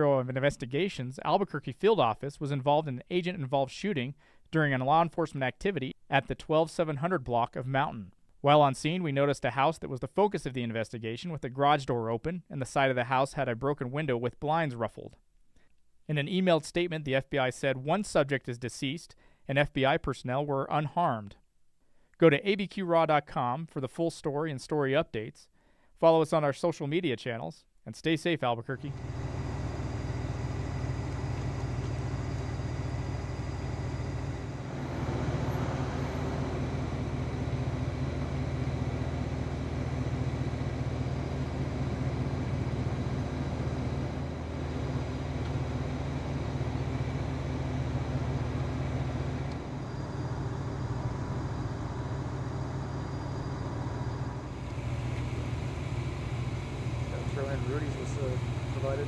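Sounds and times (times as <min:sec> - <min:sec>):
vehicle engine idling: 0:28.8 - 0:59.0.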